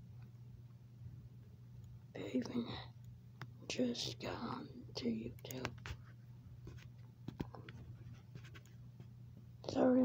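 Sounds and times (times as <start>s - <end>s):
recording device handling: 5.5s - 9.1s.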